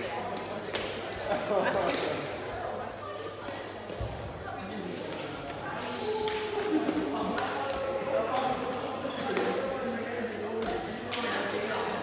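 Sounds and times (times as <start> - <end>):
feet tapping shuttlecock: 3.3 - 9.7, 10.4 - 11.5.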